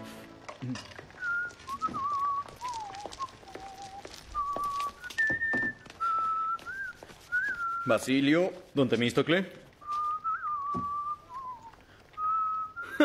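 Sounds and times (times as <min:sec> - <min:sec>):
man whistling a tune: 0:01.2 - 0:08.0, 0:09.8 - 0:13.0.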